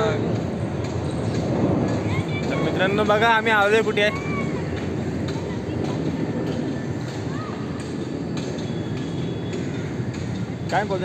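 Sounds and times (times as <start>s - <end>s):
train running on rails: 0.0s - 11.0s.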